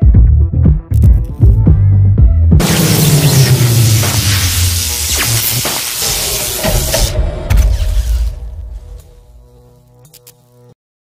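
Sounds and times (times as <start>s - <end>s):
explosion with hiss and rumble: 2.6s - 7.2s.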